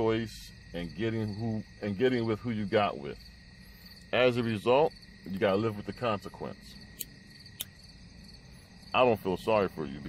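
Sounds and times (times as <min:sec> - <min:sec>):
crickets chirping: 0:00.0 - 0:10.0
sharp click: 0:07.0 - 0:07.7.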